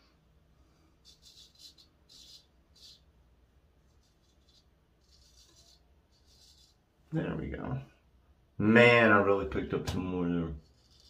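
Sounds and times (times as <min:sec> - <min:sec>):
razor scraping stubble: 0:01.0 - 0:03.1, 0:03.8 - 0:06.8, 0:10.6 - 0:11.0.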